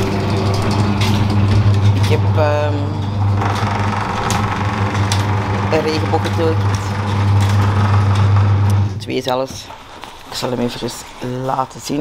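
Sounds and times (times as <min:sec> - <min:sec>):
low mechanical hum: 0:00.0 - 0:10.4.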